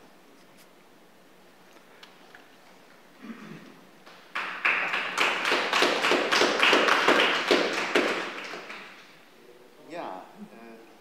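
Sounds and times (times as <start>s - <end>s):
audience applauding: 4.1s - 9.2s.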